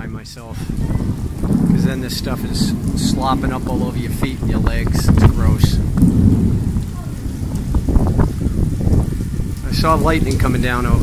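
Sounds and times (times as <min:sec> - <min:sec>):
rain on stone paving: 0:00.0 - 0:11.0
thunder rumbling: 0:00.0 - 0:11.0.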